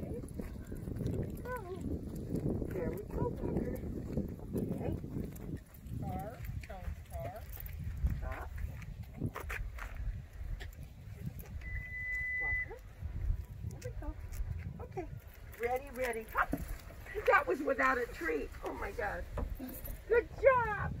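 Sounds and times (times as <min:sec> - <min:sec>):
electronic beep: 0:11.6 - 0:12.7.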